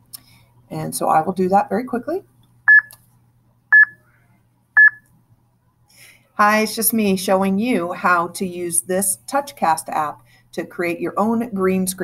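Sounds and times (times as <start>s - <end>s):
short high countdown beep: 4.8s - 5.0s.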